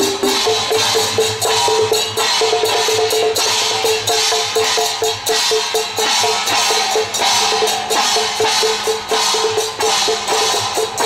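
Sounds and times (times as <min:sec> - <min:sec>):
handheld gongs struck: 0:00.0 - 0:11.0.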